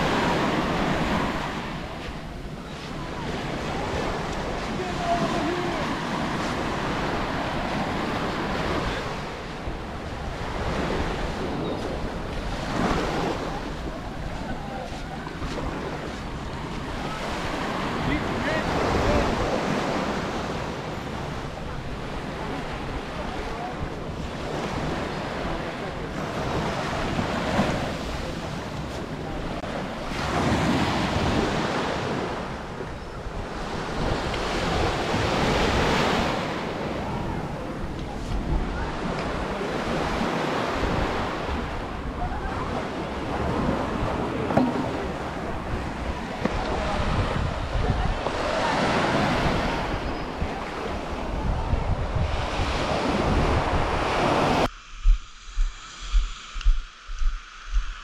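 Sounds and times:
sea waves breaking on beach: 0.0s - 54.7s
wind buffeting microphone: 0.0s - 58.0s.

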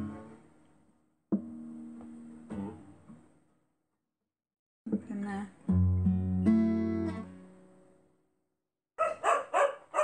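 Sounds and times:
acoustic guitar chords plucked: 0.0s - 0.6s, 1.3s - 3.4s, 4.9s - 8.2s.

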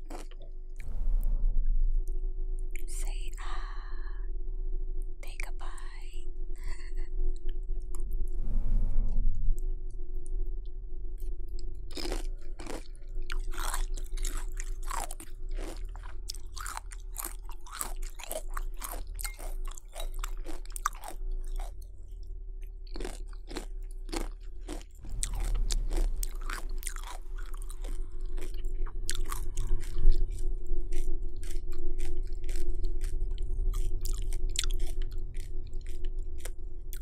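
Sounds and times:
crunching and chewing cereal: 0.0s - 0.8s, 11.2s - 37.0s
faint steady hum: 0.0s - 37.0s.

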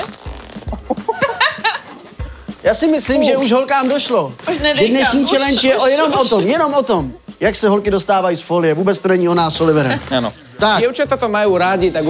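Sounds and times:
cling film rasping off roll: 0.0s - 1.0s, 9.3s - 10.4s.

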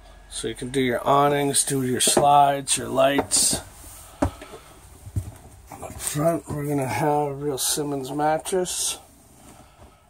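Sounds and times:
footsteps on trailer floor: 1.6s - 7.2s.

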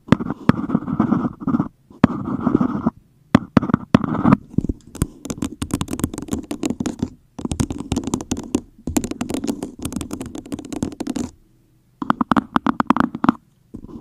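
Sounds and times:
fingernails tapping on cup: 5.0s - 11.3s.

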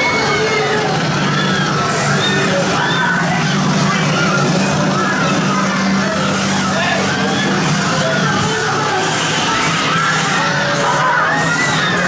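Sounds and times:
loud engine-like drone: 0.0s - 12.0s
voices: 0.0s - 12.0s.

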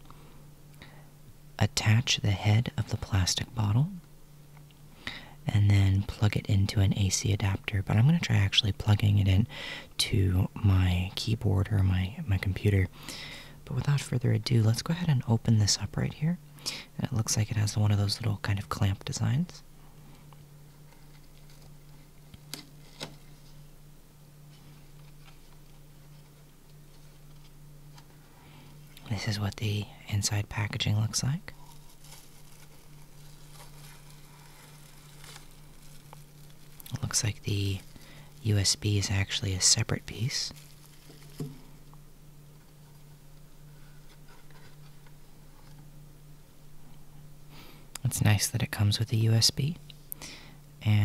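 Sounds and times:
steady low hum: 0.0s - 51.0s
cable scraping and rustling: 31.5s - 39.0s.

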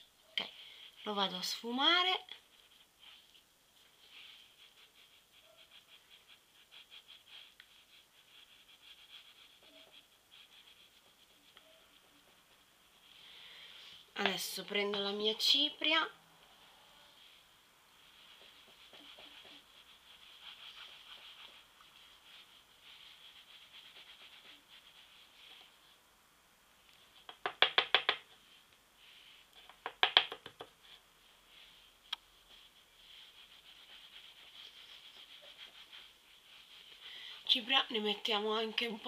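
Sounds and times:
makeup brush brushing skin: 0.3s - 26.0s, 26.8s - 39.0s.

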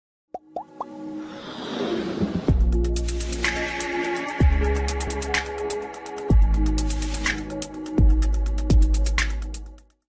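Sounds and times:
rising electronic music: 1.8s - 9.5s.

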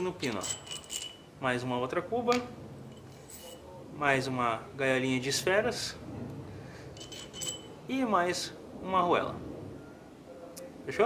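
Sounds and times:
small metal parts clinking: 0.0s - 1.3s, 2.9s - 3.7s, 7.0s - 7.8s
metallic ring: 0.0s - 1.4s, 2.8s - 3.8s, 6.9s - 7.8s.

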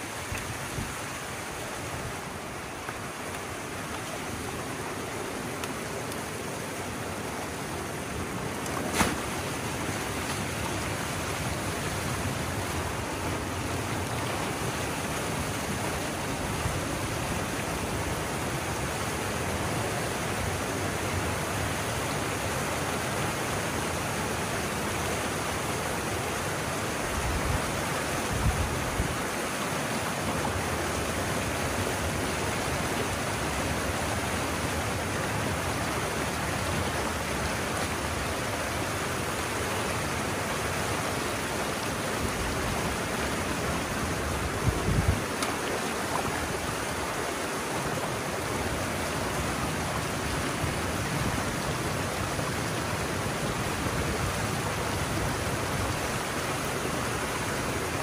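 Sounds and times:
water rushing down a channel: 0.0s - 58.0s.

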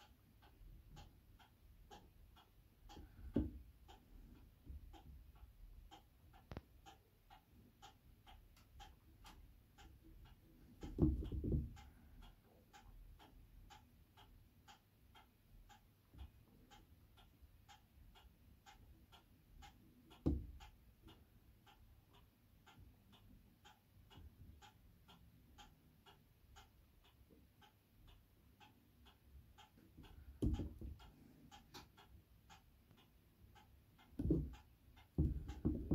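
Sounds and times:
clock ticking: 0.0s - 35.9s
low dull thumps: 34.2s - 34.6s, 35.2s - 35.9s.

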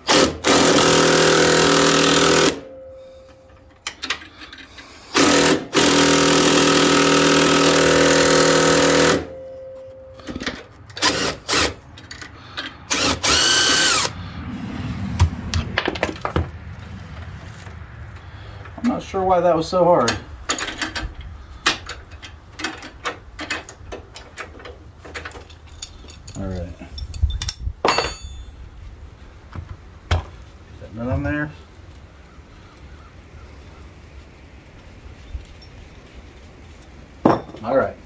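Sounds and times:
impact driver hammering: 0.1s - 2.7s, 5.2s - 9.4s.

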